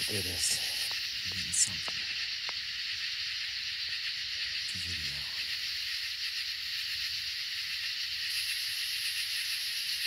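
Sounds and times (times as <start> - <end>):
high-pitched hiss of night air: 0.0 - 10.0.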